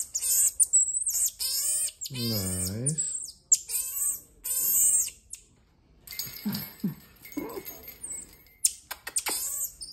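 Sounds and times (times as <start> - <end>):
marmoset chirp: 0.0 - 5.5, 8.6 - 9.9.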